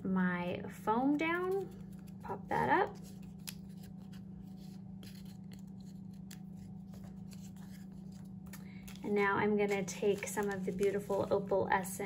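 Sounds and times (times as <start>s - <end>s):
steady low hum: 0.0s - 12.0s
paper and foam pieces rustling: 1.3s - 12.0s.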